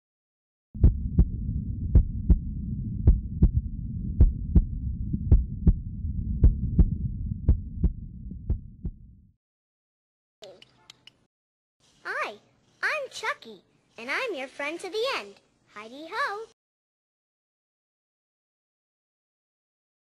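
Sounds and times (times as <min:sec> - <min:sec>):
heartbeat double thumps: 0:00.8 - 0:09.3
low rumbling drone: 0:00.8 - 0:09.3.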